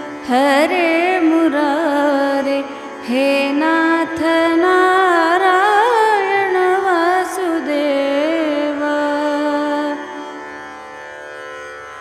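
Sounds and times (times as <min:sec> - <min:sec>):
woman chanting: 0:00.0 - 0:10.2
harmonium drone: 0:00.0 - 0:12.0.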